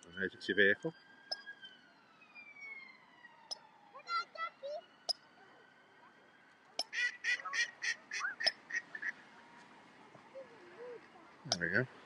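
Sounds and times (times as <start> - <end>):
distant siren wailing: 0.0 - 12.0.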